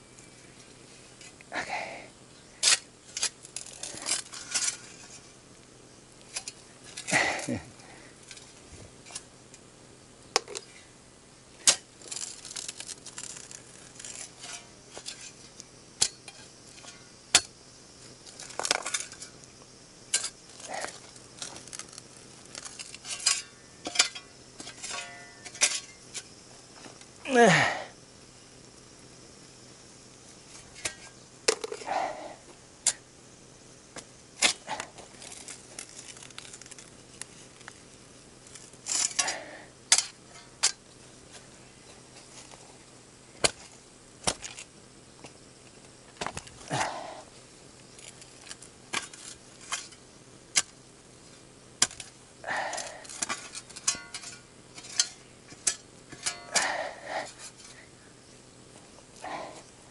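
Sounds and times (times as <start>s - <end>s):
hand tools cutting stems: 51.8s - 57.8s.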